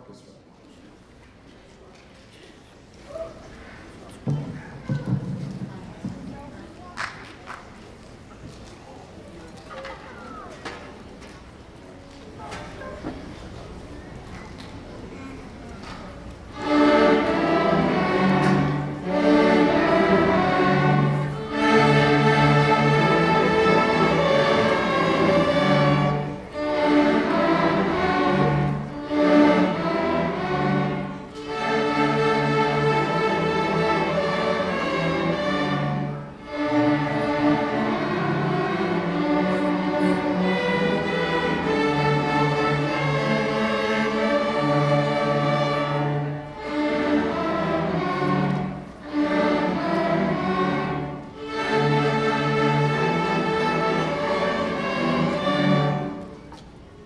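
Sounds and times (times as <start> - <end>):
string orchestra playing: 3.5 - 57.0.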